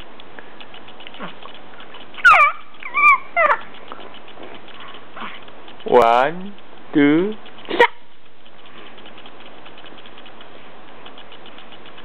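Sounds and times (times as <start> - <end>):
baby squealing: 2.2 - 3.7.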